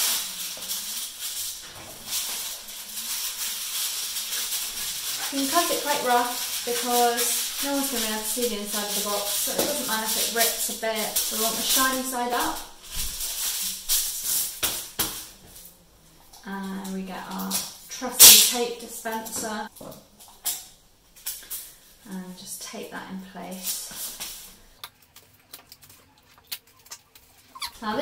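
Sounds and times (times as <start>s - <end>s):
aluminium foil crinkling: 0.0s - 22.6s, 23.2s - 28.0s
woman speaking: 5.3s - 12.8s, 16.4s - 19.7s, 22.1s - 23.9s, 27.7s - 28.0s.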